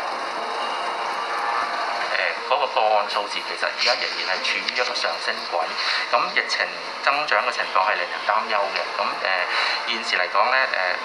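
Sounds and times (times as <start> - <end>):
man speaking: 2.1 - 11.0.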